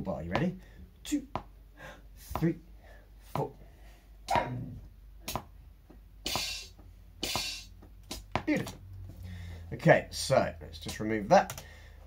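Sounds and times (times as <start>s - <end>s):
electronic hi-hat hits: 6.2s - 8.3s.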